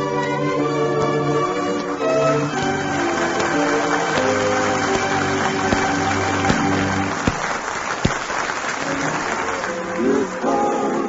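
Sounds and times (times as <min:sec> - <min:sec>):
orchestral music: 0:00.0 - 0:11.0
applause: 0:03.0 - 0:10.2.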